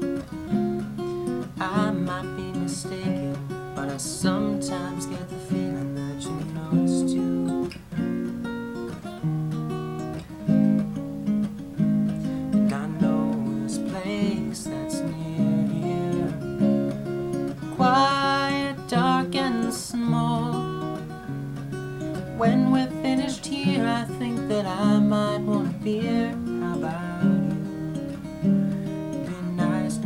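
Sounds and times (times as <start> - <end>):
fingerpicked acoustic guitar: 0.0 - 30.0.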